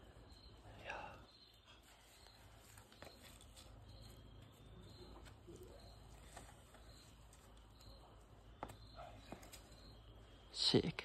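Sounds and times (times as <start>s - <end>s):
high insect chirp: 0.0s - 11.0s.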